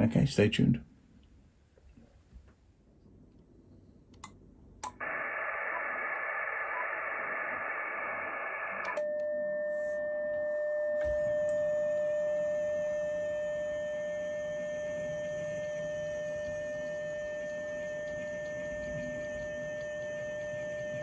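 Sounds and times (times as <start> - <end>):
faint low hum: 0.0 - 21.0
radio receiver hiss: 4.8 - 9.0, 17.7 - 21.0
steady single-pitch tone: 5.0 - 21.0.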